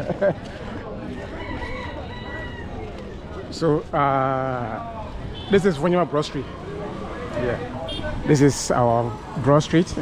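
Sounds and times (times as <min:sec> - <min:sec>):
rooster crowing: 0:01.3 - 0:02.8.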